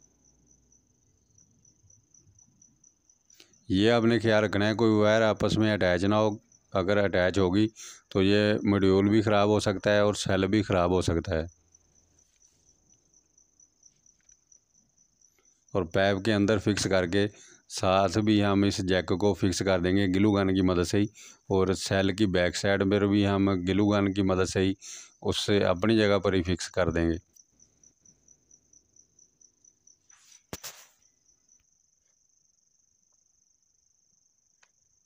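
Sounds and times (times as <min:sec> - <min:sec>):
cricket trilling: 0:00.0 - 0:35.0
man talking: 0:03.7 - 0:11.5, 0:15.8 - 0:27.3.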